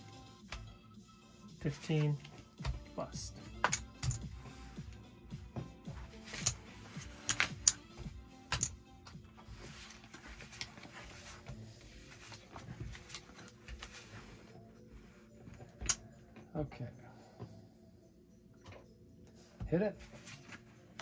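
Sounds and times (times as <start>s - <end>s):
quiet background music: 0.0s - 21.0s
playing cards sliding and dealt: 3.5s - 5.0s, 5.6s - 16.0s, 20.0s - 20.7s
casino chips clicking: 7.2s - 7.8s.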